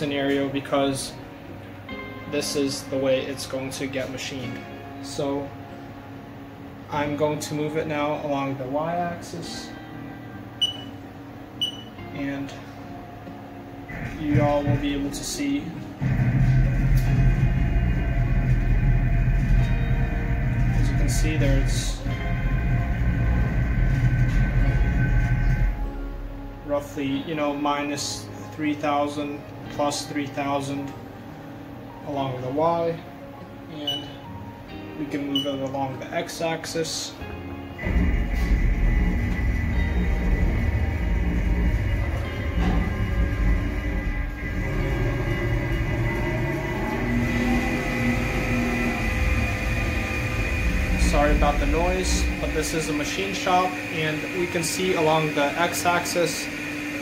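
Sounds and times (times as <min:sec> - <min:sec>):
high whine of axis drive: 0:00.0 - 0:29.4, 0:36.6 - 0:57.0
machine low rumble: 0:13.6 - 0:27.3, 0:37.7 - 0:57.0.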